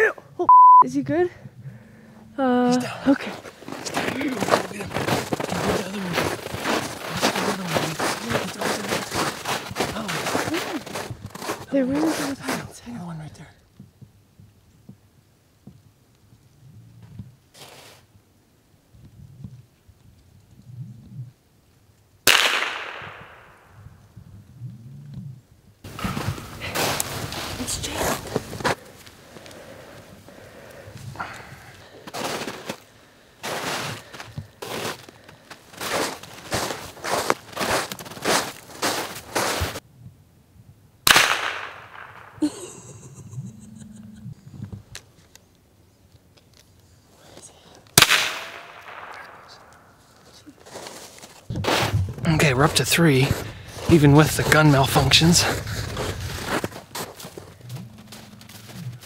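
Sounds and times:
footsteps crunching in snow: 2.8s - 12.9s, 25.9s - 39.8s, 50.0s - 59.0s
rifle shots with echo: 22.3s - 23.7s, 41.0s - 42.4s, 48.0s - 49.9s.

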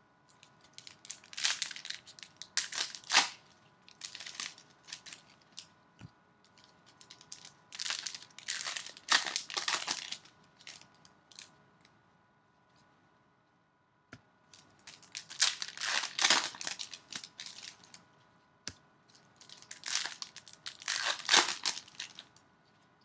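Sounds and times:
wrappers torn and crumpled: 0.4s - 5.7s, 6.6s - 11.5s, 14.6s - 18.0s, 19.4s - 22.4s.

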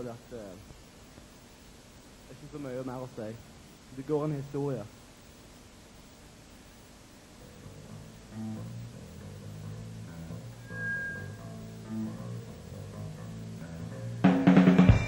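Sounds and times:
live band with drum kit: 14.2s - 15.0s.

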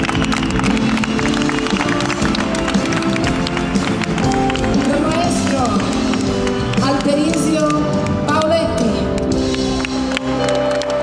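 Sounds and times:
band chords: 0.0s - 11.0s.

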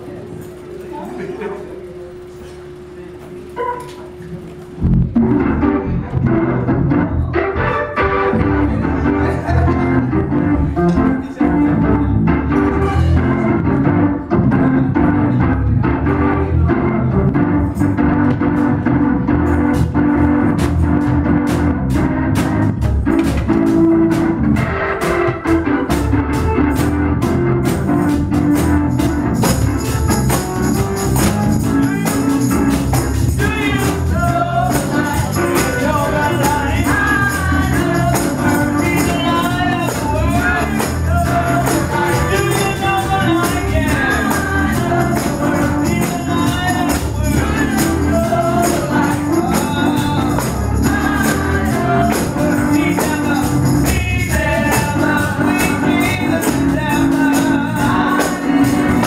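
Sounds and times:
organ playing: 0.0s - 59.0s
drums playing: 17.3s - 59.0s.

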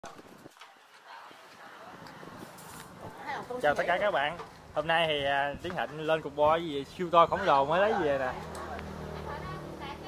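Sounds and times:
flip-flops slapping on concrete: 0.0s - 3.2s.

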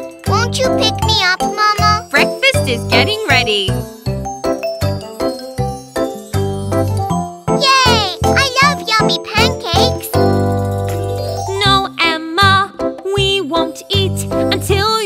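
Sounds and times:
cartoon background music: 0.0s - 15.0s.

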